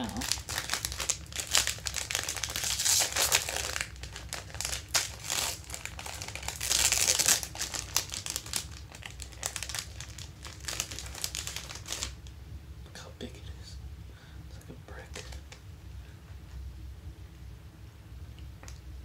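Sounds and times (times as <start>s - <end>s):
plastic wrapper crinkling: 0.0s - 12.3s.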